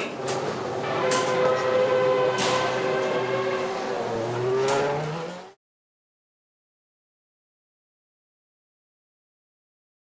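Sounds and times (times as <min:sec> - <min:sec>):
racing car engine running: 0:00.2 - 0:05.6.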